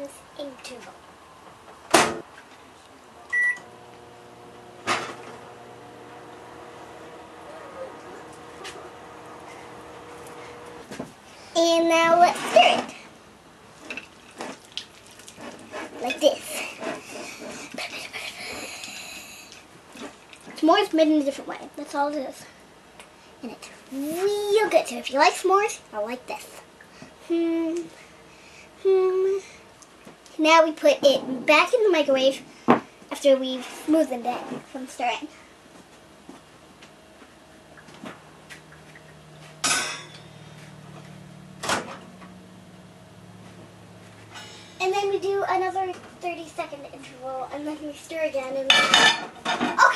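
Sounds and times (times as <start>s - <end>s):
low steady hum: 0.0s - 33.4s
high thin whine: 3.5s - 10.9s.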